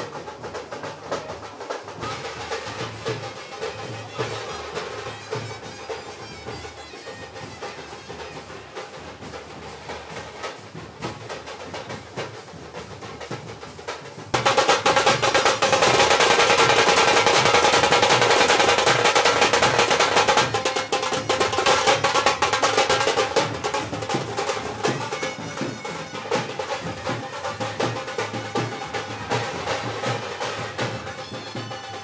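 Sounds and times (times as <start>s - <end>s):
drum rolls: 0.0s - 32.0s.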